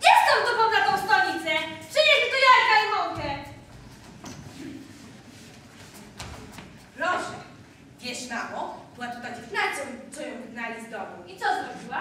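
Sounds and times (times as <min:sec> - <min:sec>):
faint knocks and rustles: 0:03.2 - 0:06.9.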